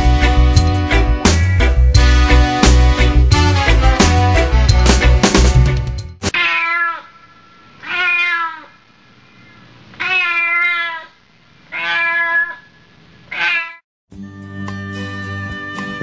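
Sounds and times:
cat meowing: 6.3s - 8.8s, 10.0s - 13.8s.

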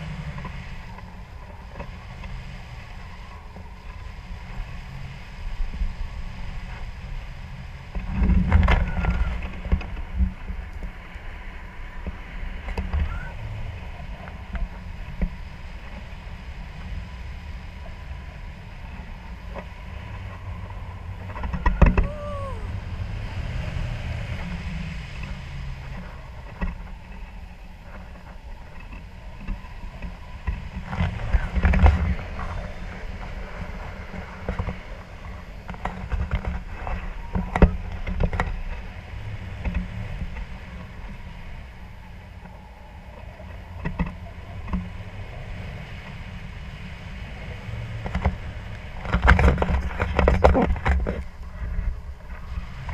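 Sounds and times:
wind buffeting microphone: 0.0s - 52.9s.

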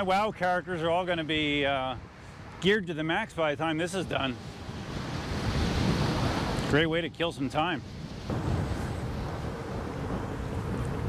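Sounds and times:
wind noise on microphone: 4.0s - 11.0s
electric unicycle rumbling on concrete: 8.1s - 11.0s.

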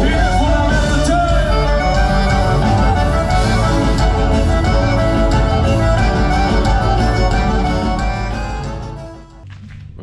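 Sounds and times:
live band playing dance music: 0.0s - 9.4s.

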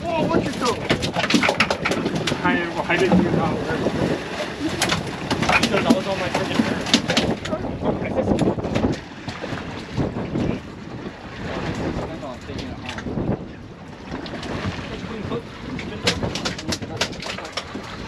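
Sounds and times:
boat on open water: 0.0s - 18.0s
wind buffeting the microphone: 0.0s - 18.0s.

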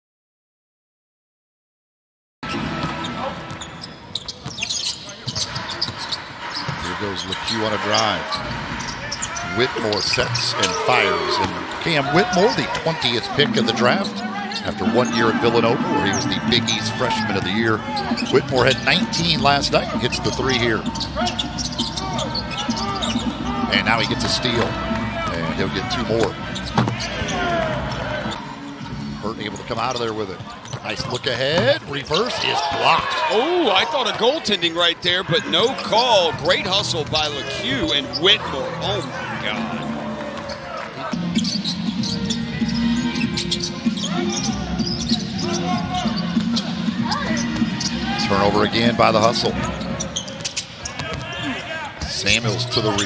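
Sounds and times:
sneakers squeaking: 2.5s - 53.0s
murmur of voices: 3.0s - 53.0s.

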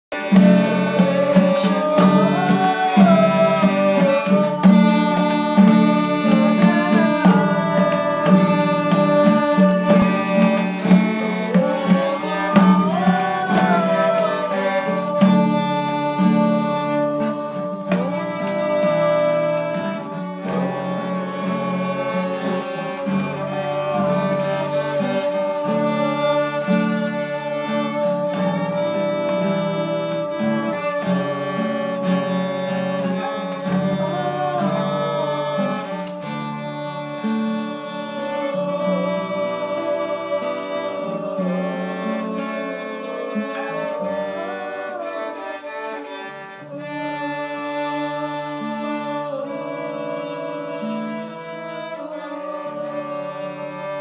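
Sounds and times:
violin melody: 0.0s - 54.0s
hand drum strokes: 0.1s - 44.6s.

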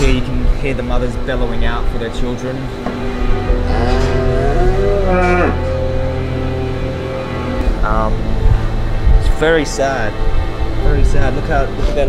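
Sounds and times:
cow mooing: 3.3s - 6.5s.

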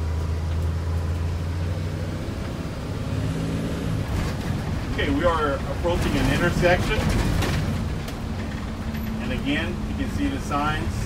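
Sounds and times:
bus engine and road rumble: 0.0s - 11.0s
light rattles: 4.1s - 10.1s.

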